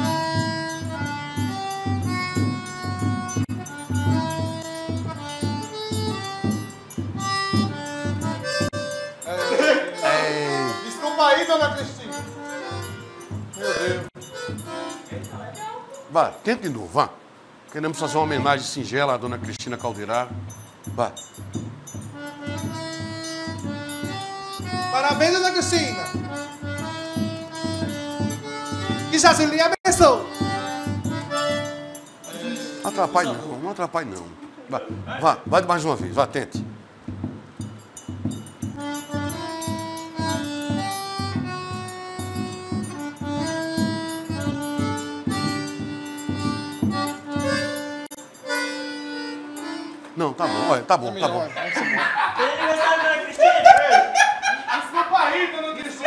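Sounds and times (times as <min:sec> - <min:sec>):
bass drum beats: 0:00.0 - 0:09.1, 0:20.3 - 0:31.8, 0:34.9 - 0:47.9
button accordion: 0:00.0 - 0:15.8, 0:21.5 - 0:34.4, 0:38.2 - 0:51.5
triangle strikes: 0:36.6 - 0:48.9.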